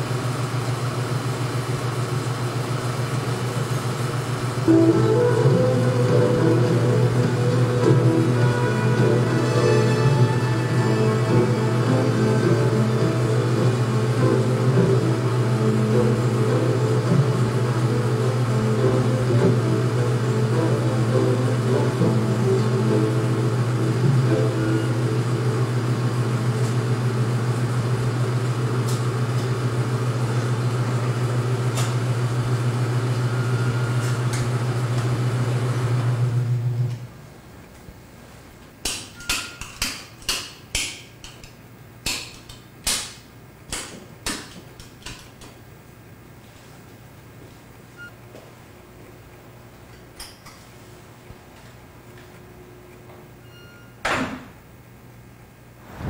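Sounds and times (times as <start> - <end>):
film projector humming: 0.0 - 37.6
electrical switches clicking: 38.8 - 45.6.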